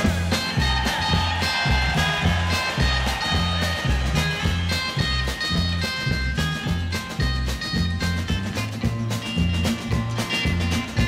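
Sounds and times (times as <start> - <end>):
bass and drum shuffle: 0.0 - 11.0
electric lead guitar melody: 3.6 - 11.0.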